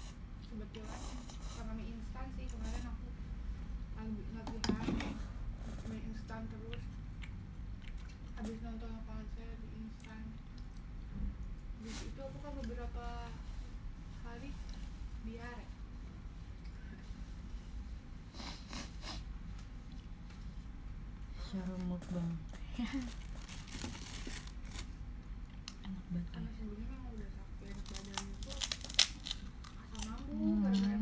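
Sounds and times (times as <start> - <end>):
low room hum: 0.0 - 31.0
person chewing noodles: 6.7 - 8.4
murmured hums: 29.8 - 31.0.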